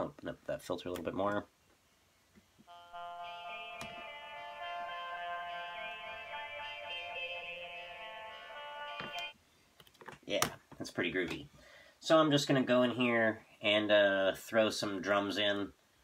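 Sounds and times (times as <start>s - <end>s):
bright steady synth tone: 2.7s - 9.4s.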